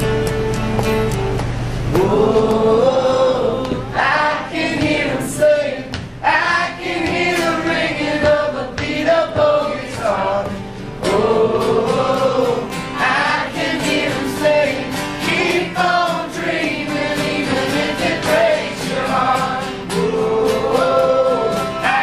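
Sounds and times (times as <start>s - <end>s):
strummed acoustic guitar: 0.0s - 22.0s
voices singing together: 1.9s - 22.0s.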